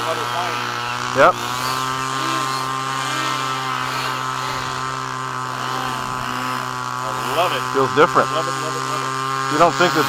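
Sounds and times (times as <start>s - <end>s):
mechanical drone with whine: 0.0s - 10.0s.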